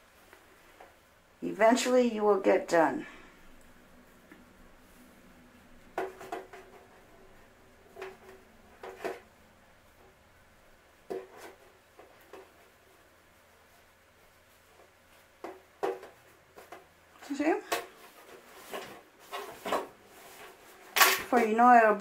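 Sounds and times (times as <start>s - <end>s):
soft rustles: 2.7s - 22.0s.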